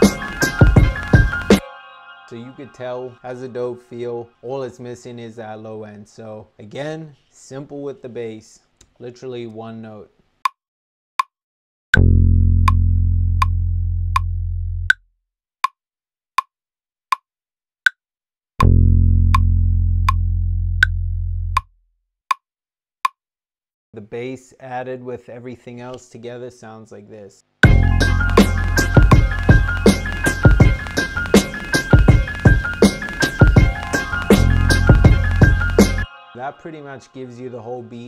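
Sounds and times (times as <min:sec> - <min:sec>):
hip hop drum beat: 0:00.0 - 0:01.6, 0:27.6 - 0:36.1
piano organ and strings melody: 0:00.0 - 0:04.4, 0:27.6 - 0:38.0
bass note: 0:12.0 - 0:14.9, 0:18.6 - 0:21.6.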